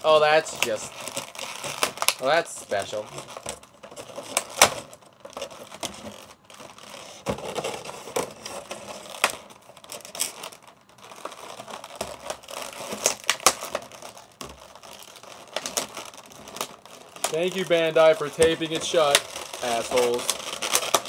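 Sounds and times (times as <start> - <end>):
plastic blister tray crinkling: 0.0 - 21.0
tape being pulled open: 4.1 - 21.0.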